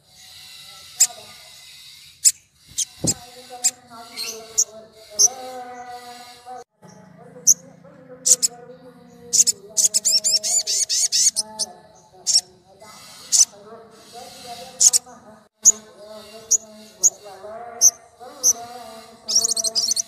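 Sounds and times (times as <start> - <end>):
rapid bird trill: 0.0 - 20.0
sunbird high chirps: 0.0 - 20.0.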